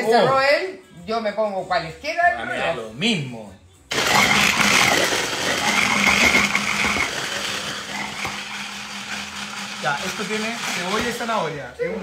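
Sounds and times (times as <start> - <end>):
electric hand blender running: 3.9 - 11.4.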